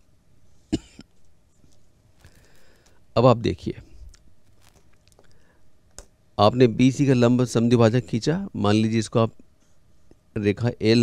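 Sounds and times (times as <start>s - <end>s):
person coughing: 0.7s - 1.1s.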